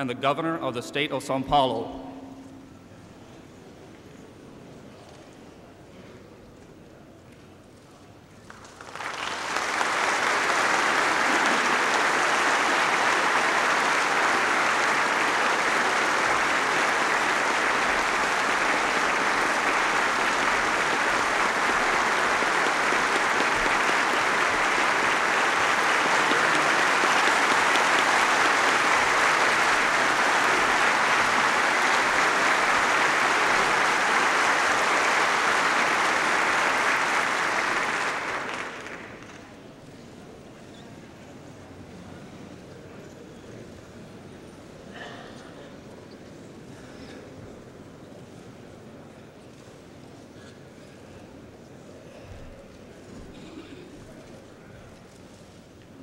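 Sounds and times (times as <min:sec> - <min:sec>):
audience applauding: 0:08.4 - 0:39.6.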